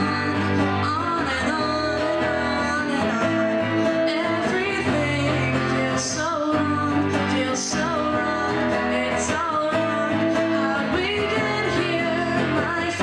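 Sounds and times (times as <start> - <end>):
acoustic guitar: 0.0 - 13.0
person singing: 0.0 - 13.0.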